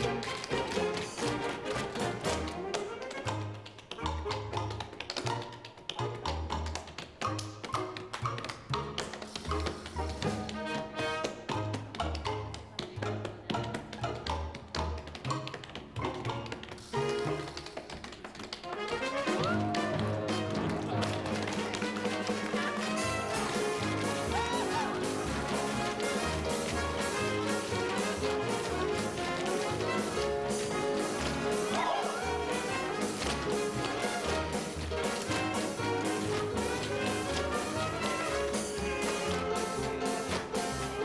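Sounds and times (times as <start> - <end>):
tap shoes on a stage floor: 0.0 - 41.0
show music with bass: 19.2 - 41.0.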